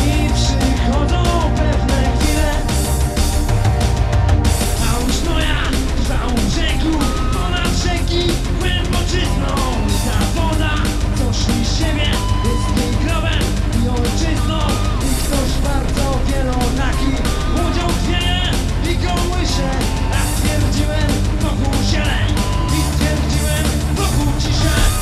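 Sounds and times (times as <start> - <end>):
bass guitar: 0.0 - 25.0
drum kit beat: 0.0 - 25.0
rock band playing: 0.0 - 25.0.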